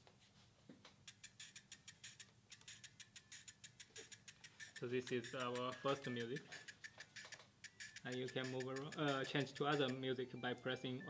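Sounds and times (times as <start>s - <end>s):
eight-bit music from small speaker: 1.1s - 11.0s.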